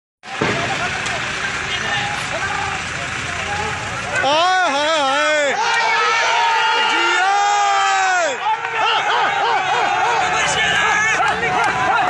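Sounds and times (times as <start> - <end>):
street noise roar: 0.2 - 12.0
distant shouting voices: 0.3 - 12.0.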